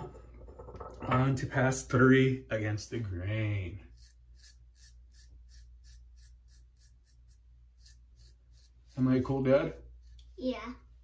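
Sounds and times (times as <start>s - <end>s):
razor scraping stubble: 3.0s - 10.4s.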